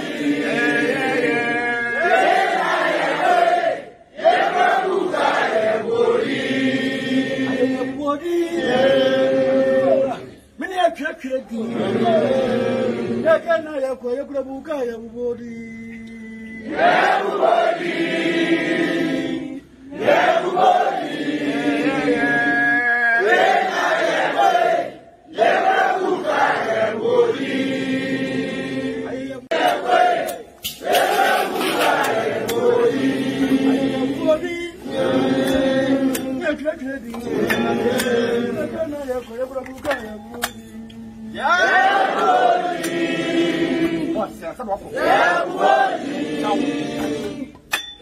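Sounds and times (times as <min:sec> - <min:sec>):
group of voices chanting: 0:00.0 - 0:08.0, 0:16.7 - 0:22.6, 0:23.2 - 0:36.4, 0:41.2 - 0:47.5.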